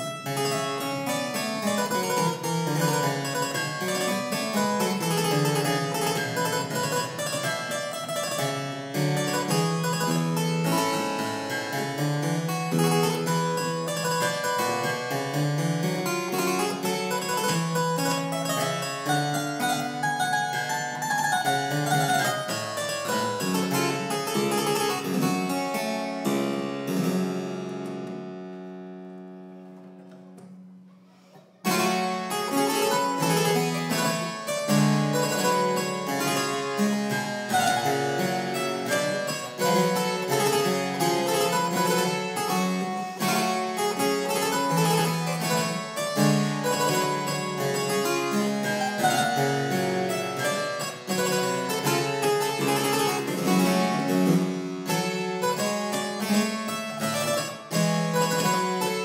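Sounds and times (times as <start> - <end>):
harpsichord playing: 0.0 - 30.8, 31.5 - 59.0.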